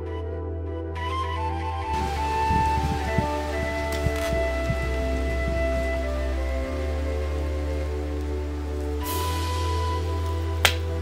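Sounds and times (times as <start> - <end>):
sustained chords over low bass: 0.0 - 11.0.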